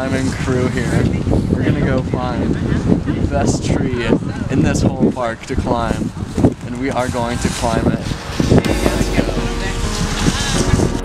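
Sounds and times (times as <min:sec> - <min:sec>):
wind noise on microphone: 0:00.0 - 0:11.0.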